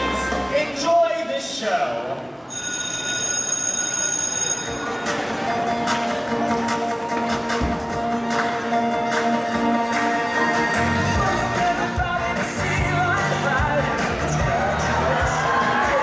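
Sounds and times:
music playing: 0:00.0 - 0:00.9, 0:04.5 - 0:16.0
bell ringing: 0:02.5 - 0:05.2.

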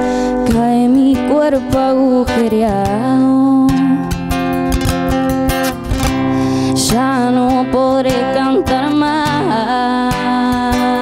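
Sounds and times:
woman singing: 0:00.0 - 0:04.8, 0:06.0 - 0:11.0
acoustic guitar strumming: 0:00.0 - 0:11.0.

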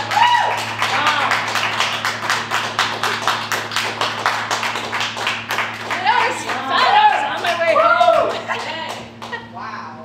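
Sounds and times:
audience clapping: 0:00.0 - 0:09.4
steady low hum: 0:00.0 - 0:10.0.

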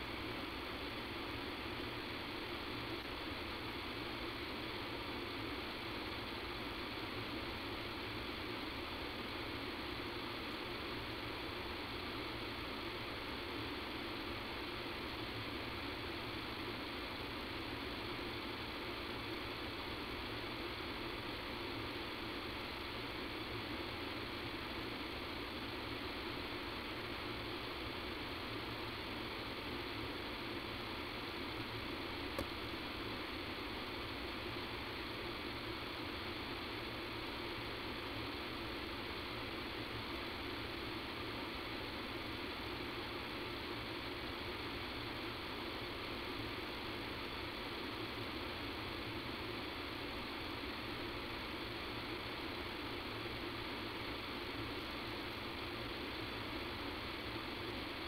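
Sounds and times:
recording line hiss and hum: 0:00.0 - 0:58.0.

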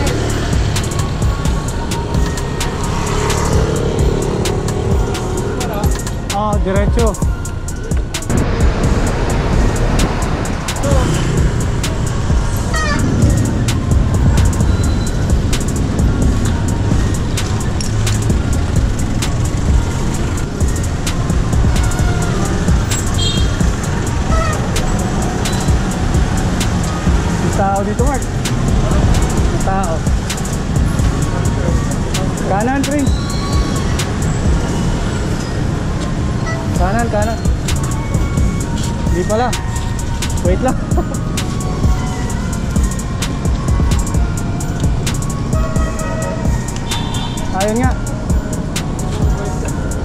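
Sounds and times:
city traffic: 0:00.0 - 0:50.0
music playing: 0:00.0 - 0:50.0
wind noise: 0:04.7 - 0:32.7
voices: 0:19.2 - 0:50.0.

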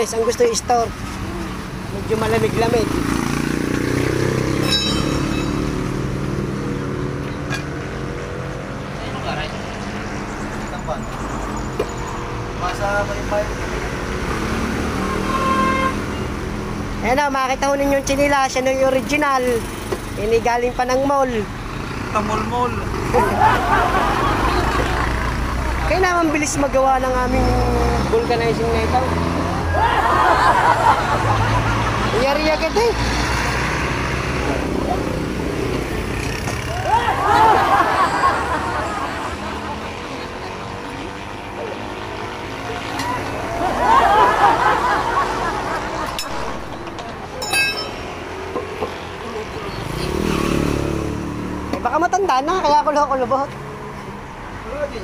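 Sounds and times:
road traffic: 0:00.0 - 0:55.0
steady held tone: 0:04.6 - 0:06.3, 0:47.4 - 0:48.3.

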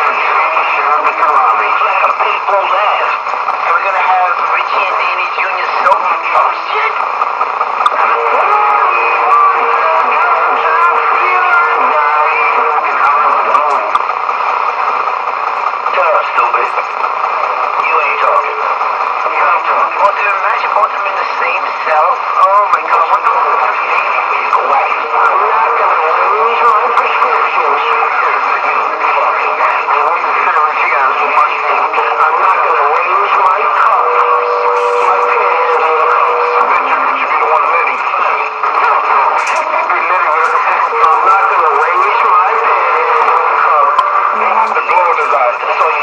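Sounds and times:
voices talking through small speaker: 0:00.0 - 0:46.0.

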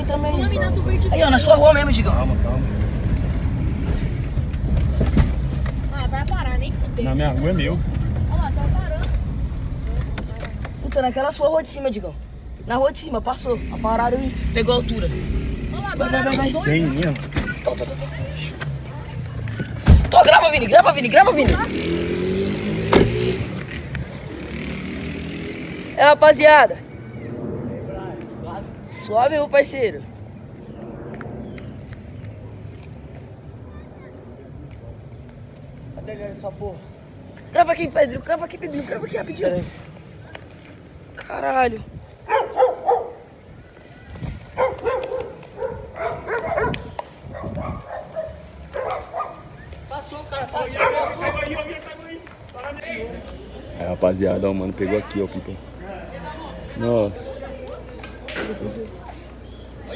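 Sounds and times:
passing vehicle engine: 0:00.0 - 0:33.3
street hum: 0:00.0 - 0:59.9
people shouting in street: 0:12.7 - 0:23.3, 0:28.6 - 0:30.1, 0:41.4 - 0:53.8.

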